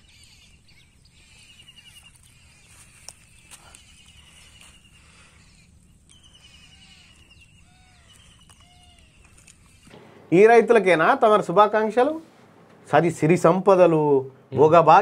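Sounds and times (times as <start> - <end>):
bird chirps: 0.0 - 14.7
bird trilling: 0.0 - 15.0.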